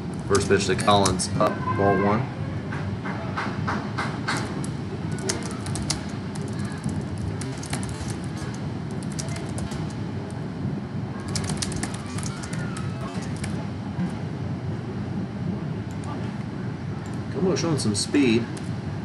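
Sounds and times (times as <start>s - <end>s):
crowd murmur: 0.0s - 17.3s.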